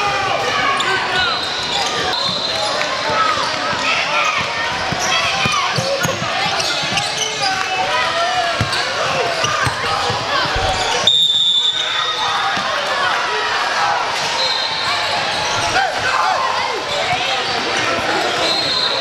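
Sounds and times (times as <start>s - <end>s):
sneakers squeaking: 0.7s - 12.8s, 14.2s - 16.1s, 16.7s - 19.0s
referee whistle: 11.0s - 12.3s, 14.4s - 14.9s, 18.3s - 19.0s.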